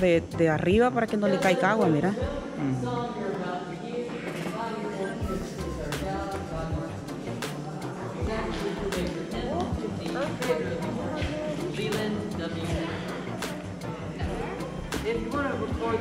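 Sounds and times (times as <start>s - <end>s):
people's voices: 0.0s - 16.0s.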